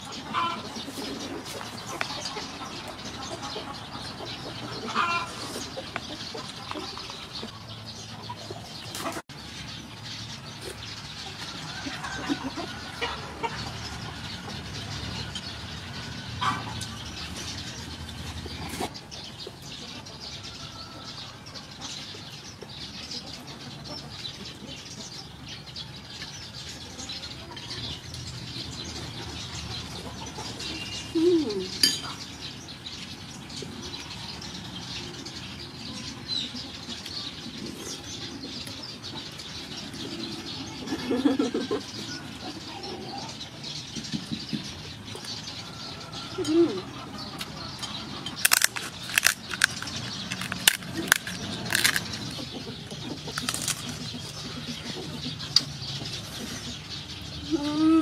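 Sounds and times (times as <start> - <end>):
birds calling: 0.0 - 58.0
spoon clicks: 48.5 - 52.0
person eating: 48.5 - 52.3, 53.4 - 54.0.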